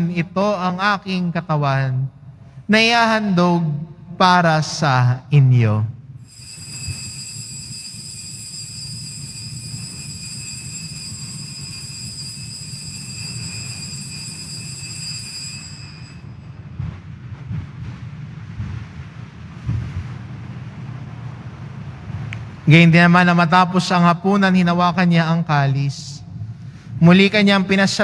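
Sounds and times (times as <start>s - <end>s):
altar bells ringing: 6.2s - 16.8s
steady low rumble: 16.0s - 28.0s.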